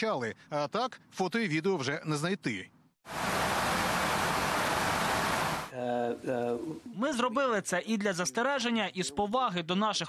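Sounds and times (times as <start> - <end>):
static hiss: 3.1 - 6.8.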